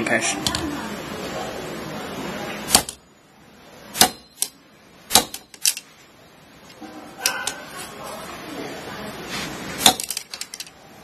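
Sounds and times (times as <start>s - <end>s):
soft handling noise: 5.6s - 10.8s.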